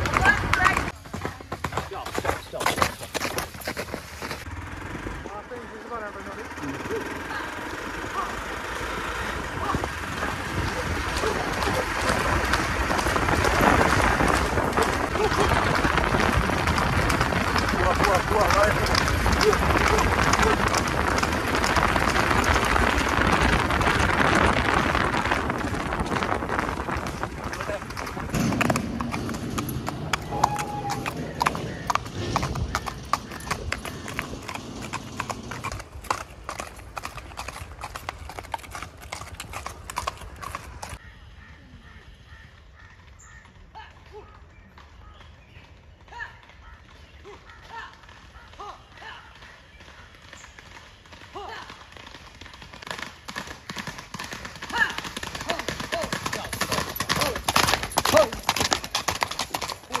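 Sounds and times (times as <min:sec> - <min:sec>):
horse hooves on paved road: 0:00.0 - 1:00.0.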